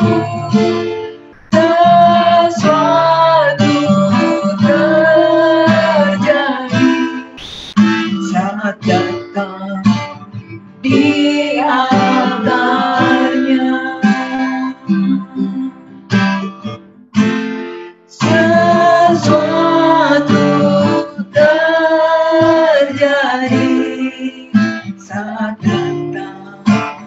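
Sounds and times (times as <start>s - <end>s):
woman singing: 0.0s - 0.8s, 1.5s - 7.2s, 10.8s - 16.1s, 18.2s - 27.0s
acoustic guitar strummed: 0.0s - 27.0s.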